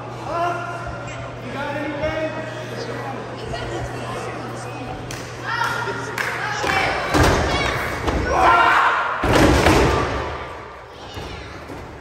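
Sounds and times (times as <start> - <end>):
spectators shouting: 8.2 - 9.2.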